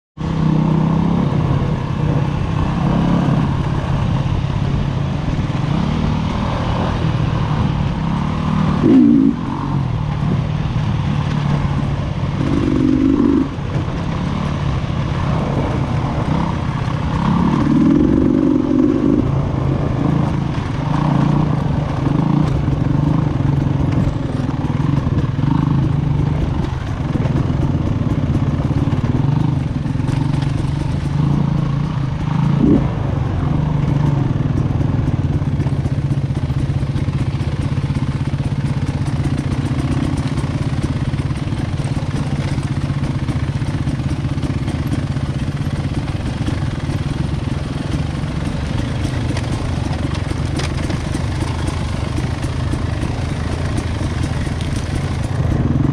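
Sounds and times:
motorcycle engine revving: 0.2 - 55.9.

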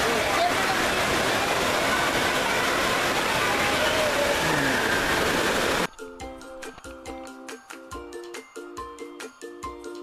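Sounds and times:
crowd voices: 0.0 - 5.8
spraying and splashing water: 0.0 - 5.9.

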